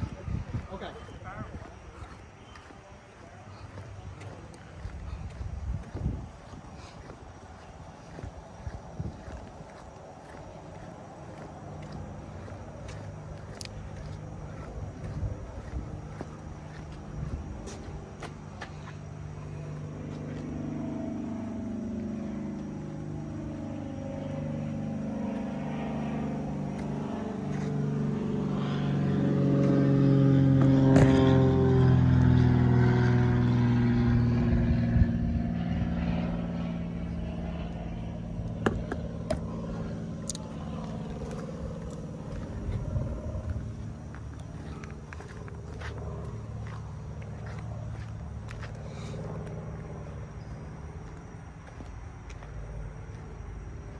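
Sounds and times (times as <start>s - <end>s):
armoured car engine running: 0.0s - 53.9s.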